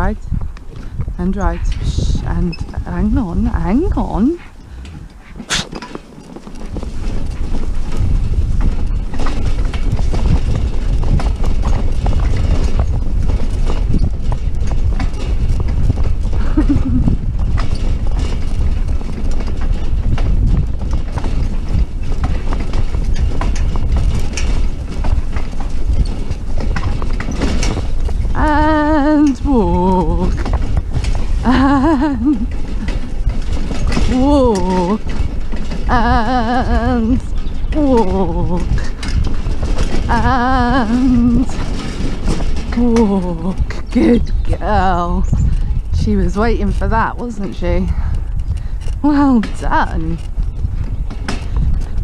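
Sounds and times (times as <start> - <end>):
carriage rattling: 0.0 - 52.0
horse hoofbeats on grass: 0.0 - 52.0
low rumble: 0.0 - 52.0.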